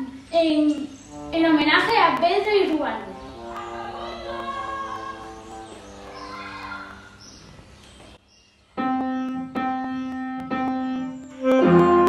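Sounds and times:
piano accompaniment: 1.1 - 6.4, 8.8 - 12.0.

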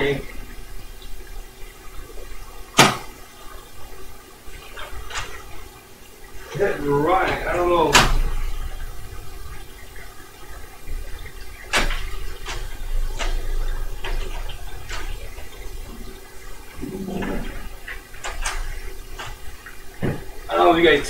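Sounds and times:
tape recorder running: 6.4 - 19.8.

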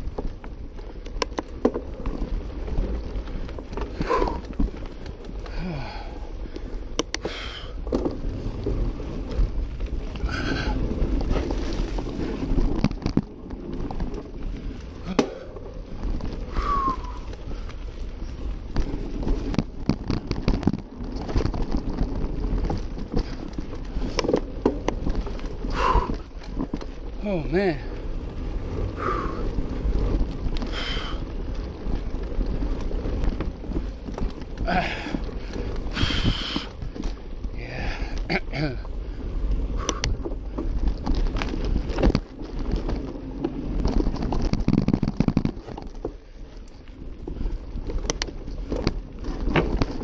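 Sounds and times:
bike tyres rumbling on dirt: 0.0 - 50.0
wind buffeting microphone: 0.0 - 50.0
bike rattling knocks: 18.7 - 27.9, 39.8 - 46.2, 47.4 - 50.0.

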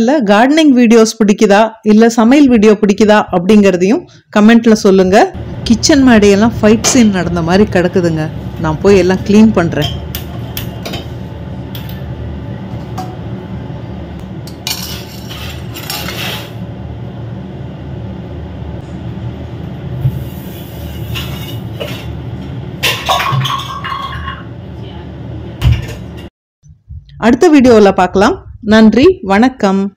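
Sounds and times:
steady low hum: 3.3 - 29.7
kitchen utensils clattering: 14.5 - 16.6, 22.8 - 24.5.

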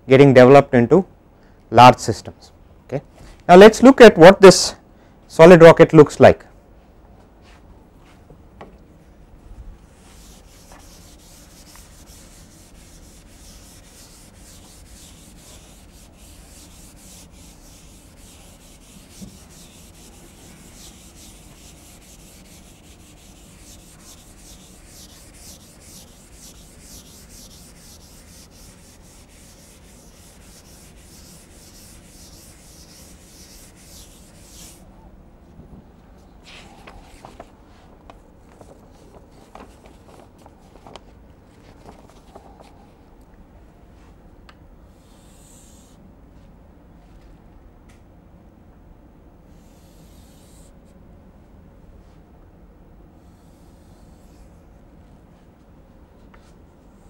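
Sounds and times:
eraser rubbing on chalkboard: 9.9 - 34.8, 49.6 - 50.7, 53.2 - 54.6.

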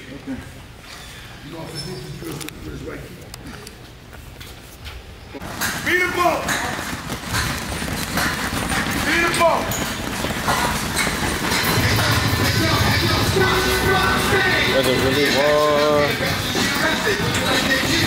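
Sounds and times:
music with vocals: 11.6 - 18.0.

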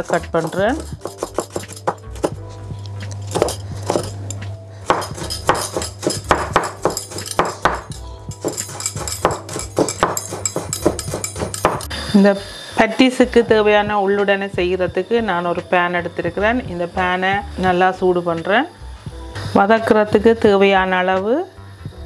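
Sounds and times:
knife chopping on wooden board: 0.0 - 2.4, 3.3 - 4.1, 4.9 - 11.9.

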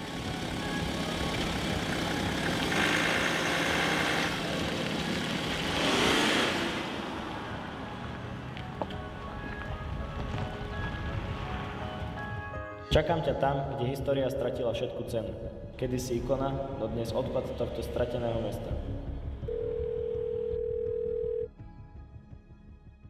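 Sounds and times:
car driving by: 0.0 - 12.5
quiet background music: 0.0 - 23.0.

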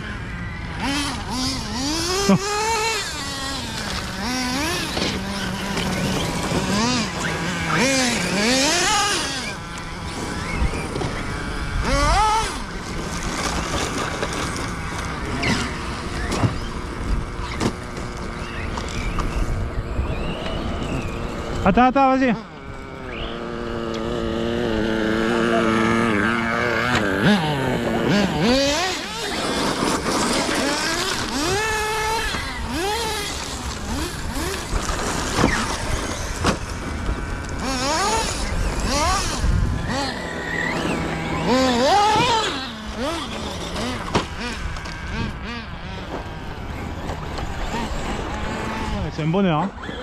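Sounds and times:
electric motors whining: 0.0 - 50.0.

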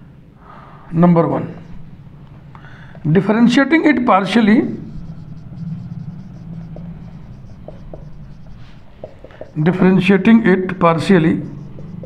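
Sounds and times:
steady low hum: 0.0 - 12.0
marker scratching on whiteboard: 2.7 - 12.0.

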